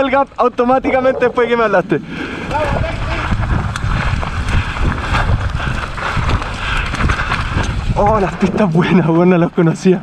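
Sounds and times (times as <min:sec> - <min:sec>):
wind buffeting microphone: 0:00.2 - 0:09.3
tyres rumbling on dirt: 0:00.3 - 0:09.4
bike clattering over bumps: 0:00.6 - 0:01.8, 0:02.4 - 0:08.5.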